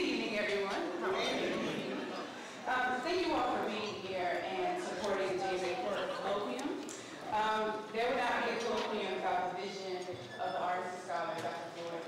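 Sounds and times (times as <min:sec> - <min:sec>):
indistinct talking: 0:00.0 - 0:10.1.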